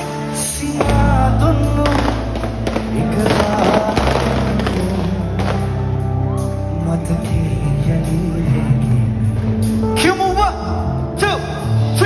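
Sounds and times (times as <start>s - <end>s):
live band playing through pa: 0.0s - 12.0s
person singing: 0.0s - 12.0s.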